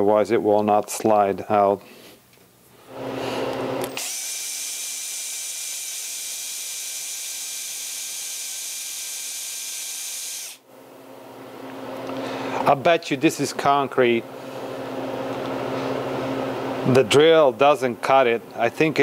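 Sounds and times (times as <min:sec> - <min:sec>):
cordless drill whining: 0:03.0 - 0:10.6.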